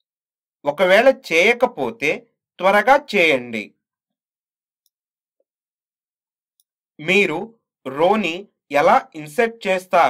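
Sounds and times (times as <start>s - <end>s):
narrator speaking: 0.7s - 3.8s, 7.0s - 10.0s.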